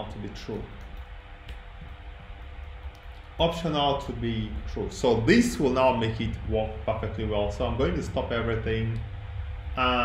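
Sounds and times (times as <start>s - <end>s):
computer fan hum: 0.0s - 10.0s.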